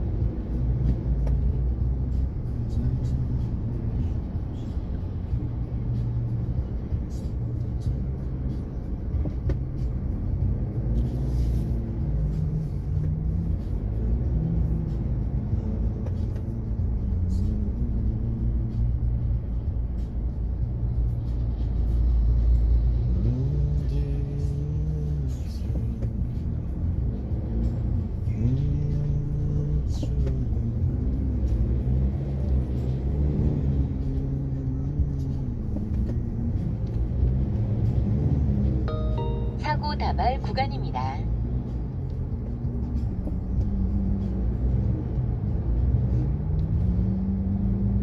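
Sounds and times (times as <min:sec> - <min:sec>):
music playing: 0:00.0 - 0:47.1
road and engine rumble inside car: 0:00.0 - 0:48.0.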